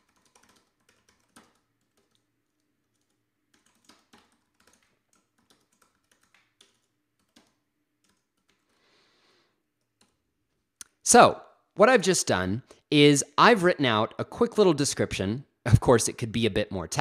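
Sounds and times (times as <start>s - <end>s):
faint typing on keyboard: 0.0s - 8.9s, 9.7s - 11.0s.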